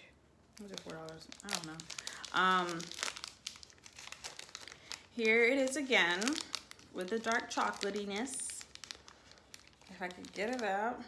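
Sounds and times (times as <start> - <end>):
plastic candy wrapper crinkling: 0.5 - 11.0.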